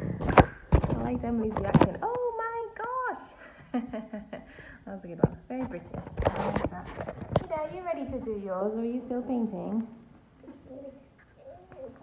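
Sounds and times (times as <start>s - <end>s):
small child murmuring: 10.4s - 12.0s.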